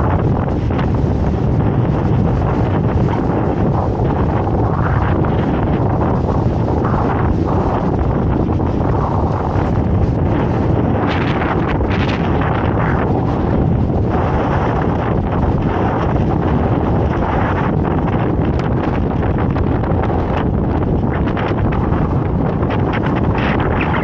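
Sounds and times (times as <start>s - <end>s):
strong wind buffeting microphone: 0.0s - 24.0s.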